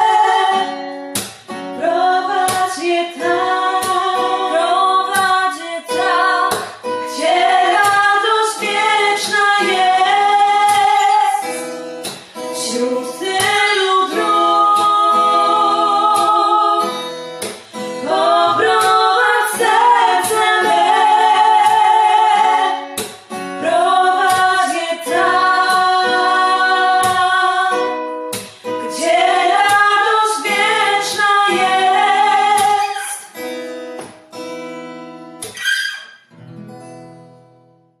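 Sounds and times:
woman singing: 0.0s - 1.0s, 1.7s - 17.1s, 17.9s - 33.4s
acoustic guitar: 0.0s - 38.0s.

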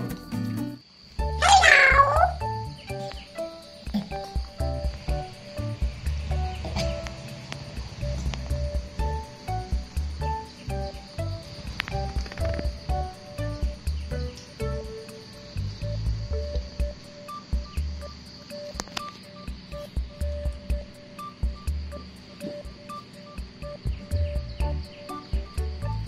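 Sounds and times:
plucked music over low beat: 0.0s - 26.0s
monkey squealing: 1.4s - 2.5s.

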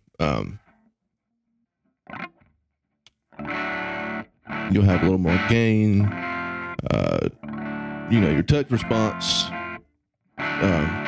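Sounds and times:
electric guitar strum: 2.1s - 2.4s, 3.4s - 9.8s, 10.4s - 11.0s.

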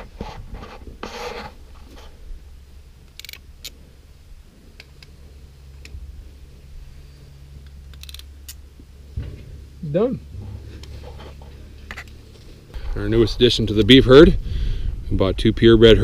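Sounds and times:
low rumble: 2.2s - 16.0s.

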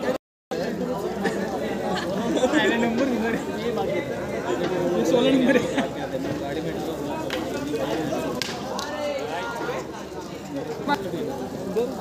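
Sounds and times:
players' voices chattering: 0.0s - 12.0s.

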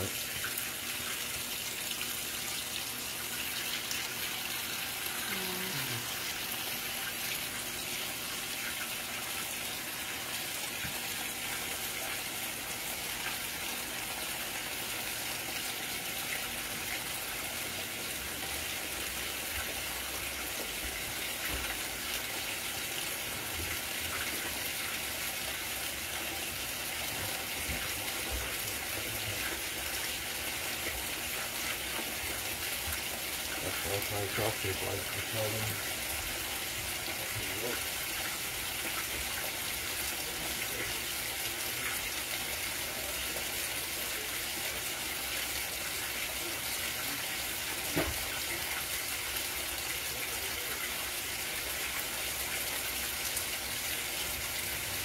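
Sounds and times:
water pouring into washer tub: 0.0s - 55.0s.

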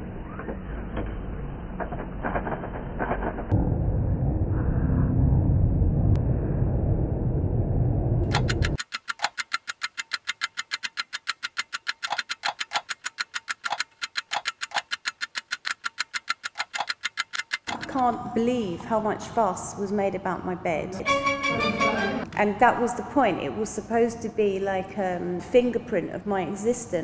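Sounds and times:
loud low rumble: 3.5s - 8.3s
rapid sharp clicks: 8.3s - 18.0s.

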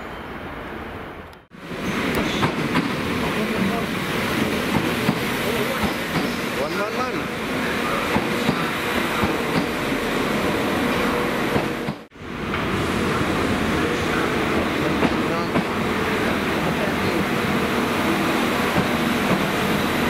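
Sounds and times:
rumble of train moving: 0.0s - 20.0s
train wheels clicking over rail joints: 4.7s - 6.4s, 8.1s - 9.8s, 18.7s - 19.7s.

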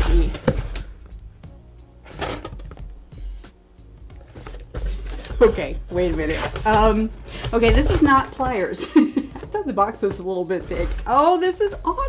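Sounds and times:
cardboard and plastic rustling: 0.0s - 1.2s, 4.1s - 12.0s
background music: 0.0s - 12.0s.

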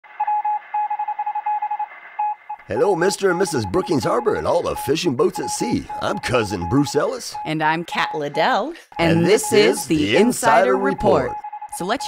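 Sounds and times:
morse code beeping: 0.2s - 12.0s.

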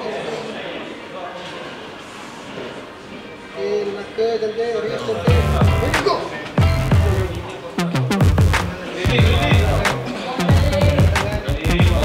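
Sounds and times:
faint speech: 2.7s - 12.0s.

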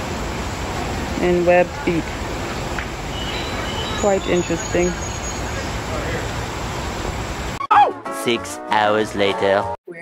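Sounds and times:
rushing outdoor noise with hiss: 0.0s - 7.6s.

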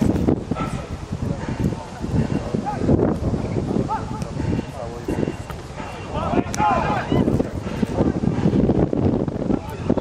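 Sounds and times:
distant voices calling and shouting: 0.0s - 10.0s
wind rumbling on microphone: 0.0s - 10.0s.

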